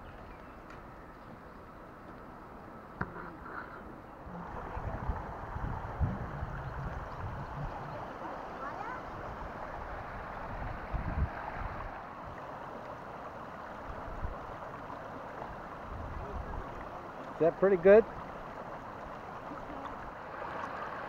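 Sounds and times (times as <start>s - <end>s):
shallow water flowing: 0.0s - 21.0s.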